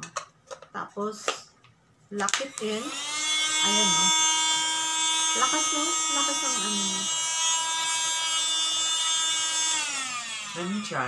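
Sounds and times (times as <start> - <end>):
cordless vacuum cleaner whine: 2.3 - 11.0.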